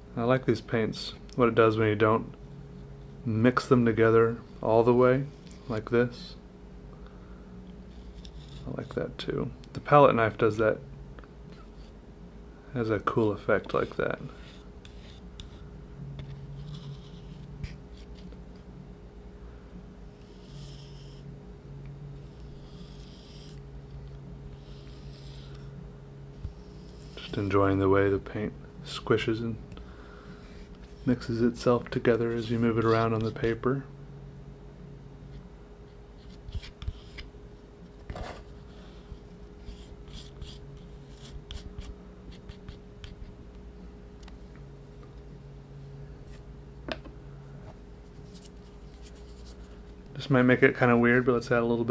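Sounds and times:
palette knife scraping paint: 7.9s - 9.0s, 13.7s - 18.4s, 20.2s - 21.2s, 22.2s - 23.6s, 24.5s - 25.7s, 26.4s - 27.6s, 36.2s - 37.3s, 38.0s - 43.2s.

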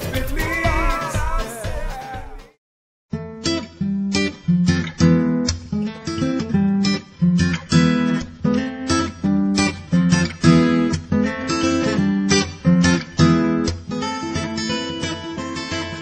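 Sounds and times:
acoustic guitar strumming chords: 0.0s - 2.6s, 3.2s - 16.0s.

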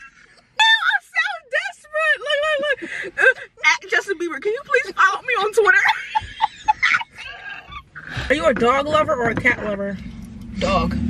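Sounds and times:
woman laughing: 1.9s - 3.7s, 5.4s - 8.1s.

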